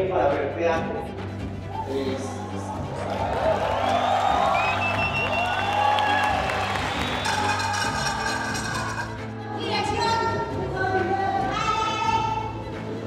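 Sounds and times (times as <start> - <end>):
background music: 0.0 - 13.0
audience applauding and cheering: 1.6 - 9.5.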